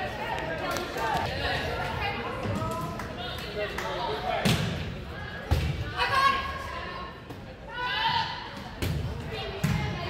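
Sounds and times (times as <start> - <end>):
spectators' voices: 0.0 - 10.0.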